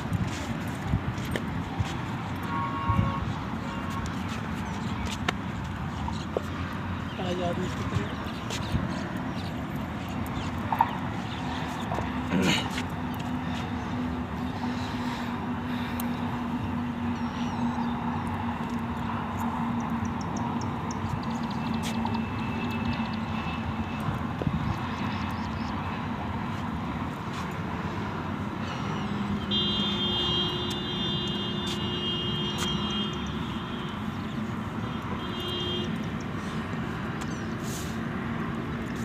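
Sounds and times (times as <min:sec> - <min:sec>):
highway traffic rumble: 0:00.0 - 0:39.0.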